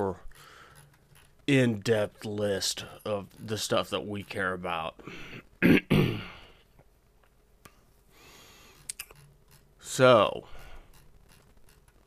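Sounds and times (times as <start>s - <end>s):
man clearing his throat: 5.6s - 6.5s.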